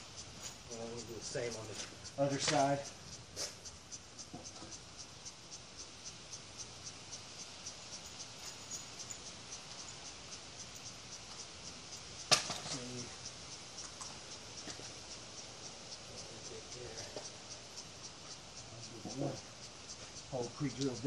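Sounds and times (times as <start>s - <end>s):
insects chirping: 0.0s - 21.0s.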